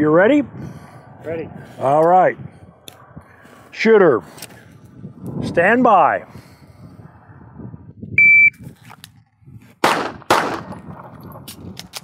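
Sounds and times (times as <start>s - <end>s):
shot timer beep: 8.2s - 8.6s.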